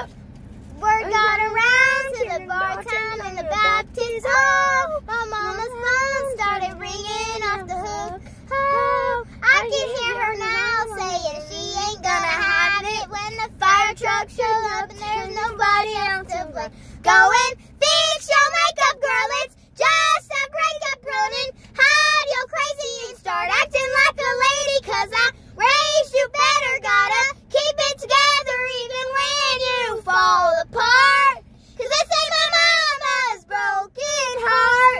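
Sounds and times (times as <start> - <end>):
girls singing unaccompanied: 0.8 - 34.9.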